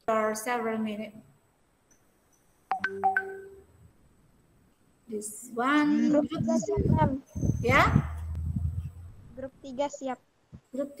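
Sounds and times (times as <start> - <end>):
electronic notification chime: 2.7 - 3.6.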